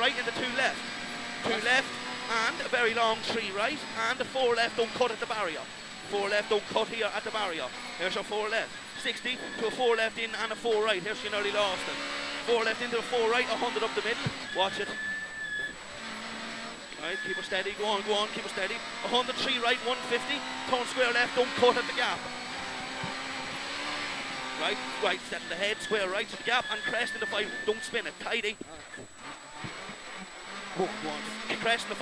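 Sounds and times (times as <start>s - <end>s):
faint road noise: 0.0s - 32.0s
rally car engine from inside cabin: 0.0s - 32.0s
high whine: 0.3s - 32.0s.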